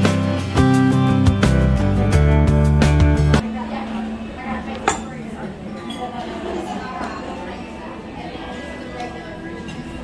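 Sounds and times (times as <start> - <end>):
murmur of diners' voices: 0.0 - 10.0
tableware clinking: 4.7 - 7.7, 9.0 - 10.0.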